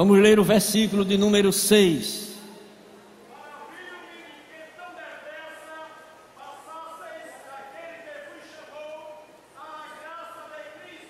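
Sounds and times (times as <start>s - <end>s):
congregation reading aloud together: 0.0s - 2.6s, 3.3s - 11.0s.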